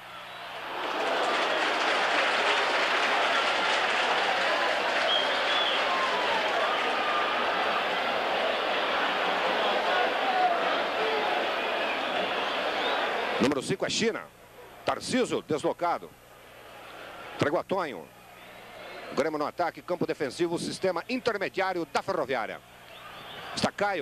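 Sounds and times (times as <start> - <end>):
stadium crowd shouting: 0.0 - 13.6, 16.4 - 17.4, 18.0 - 19.3, 21.0 - 23.8.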